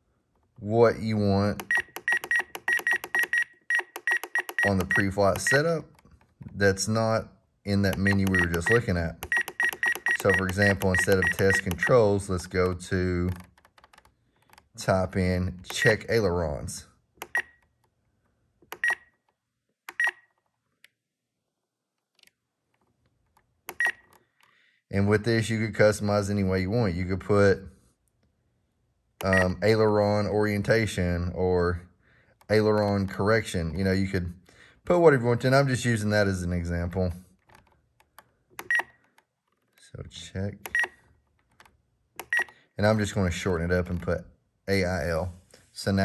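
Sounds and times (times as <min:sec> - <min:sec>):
radio transmitter beeping: 0:01.6 - 0:05.8, 0:07.8 - 0:12.7, 0:29.2 - 0:29.5
scroll wheel clicks: 0:01.6 - 0:06.3, 0:07.7 - 0:14.7, 0:17.2 - 0:17.9, 0:18.6 - 0:19.0, 0:23.3 - 0:24.2, 0:37.4 - 0:39.3, 0:40.6 - 0:42.6.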